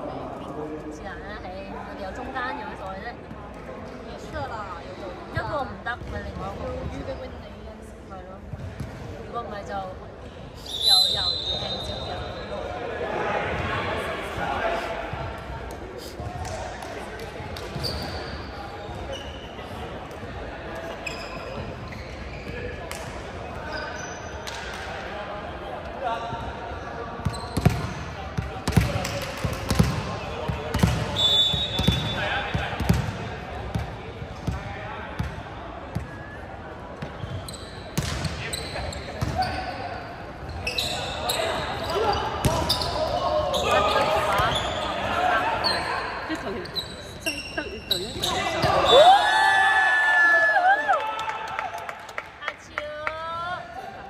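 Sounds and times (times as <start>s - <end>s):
volleyball thuds in a hall: 0.0s - 54.0s.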